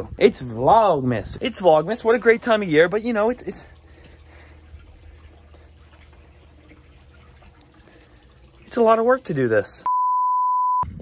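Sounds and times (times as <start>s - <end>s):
running water: 0.0s - 9.9s.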